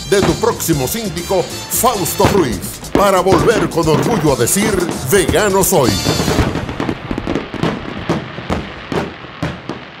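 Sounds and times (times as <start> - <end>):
fireworks popping and crackling: 0.0 - 10.0.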